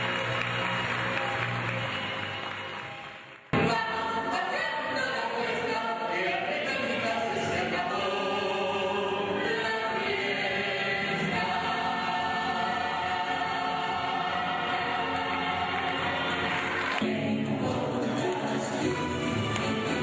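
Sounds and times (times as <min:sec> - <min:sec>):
musical accompaniment: 0:00.0 - 0:20.0
woman and man singing: 0:03.6 - 0:20.0.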